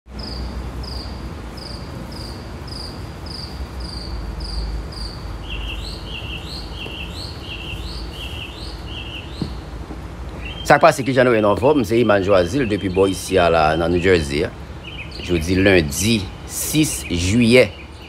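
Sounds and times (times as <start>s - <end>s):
songbird whistling: 0.2s - 9.6s.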